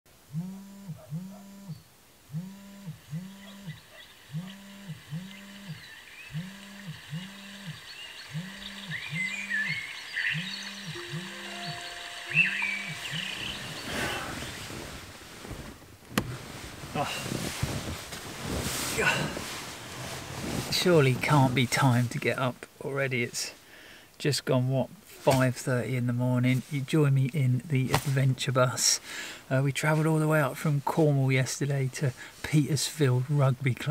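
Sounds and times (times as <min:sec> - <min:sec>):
phone alarm vibrating: 0:00.3 - 0:14.5
bedding rustling: 0:13.1 - 0:22.2.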